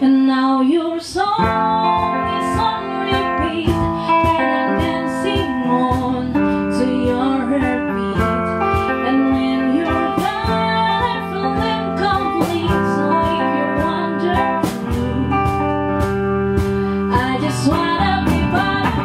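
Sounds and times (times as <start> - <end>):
bass guitar: 0.0 - 19.0
woman singing: 0.0 - 19.0
strummed guitar: 1.1 - 19.0.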